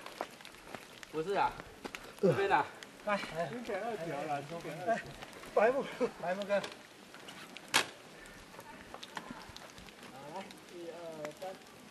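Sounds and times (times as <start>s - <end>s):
small ticks: 0.0s - 11.8s.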